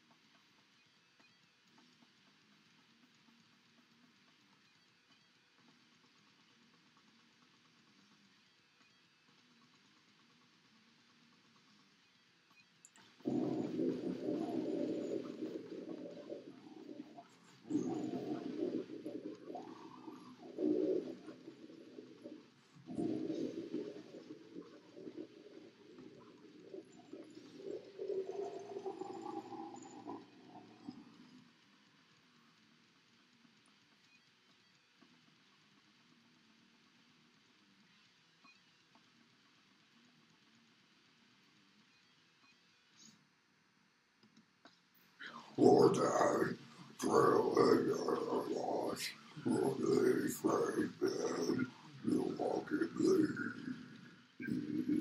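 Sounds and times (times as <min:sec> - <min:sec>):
guttural growled vocals: 0:13.2 - 0:30.3, 0:45.2 - 0:55.0.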